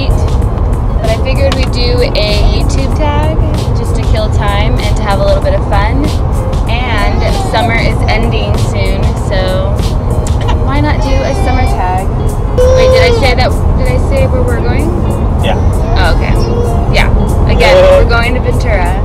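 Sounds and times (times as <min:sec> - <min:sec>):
music: 0:00.0 - 0:19.0
road rumble inside car: 0:00.0 - 0:19.0
pitched voice: 0:06.8 - 0:08.0, 0:10.5 - 0:12.0, 0:12.6 - 0:13.5, 0:14.8 - 0:18.3.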